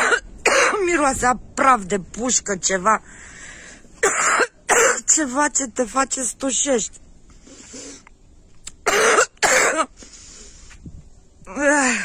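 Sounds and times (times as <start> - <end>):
person coughing: 0.0 - 0.8, 4.0 - 5.1, 8.9 - 9.9.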